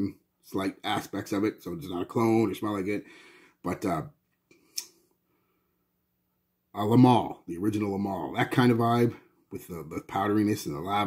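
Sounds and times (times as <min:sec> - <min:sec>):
person speaking: 0:00.0 - 0:05.0, 0:06.7 - 0:11.0.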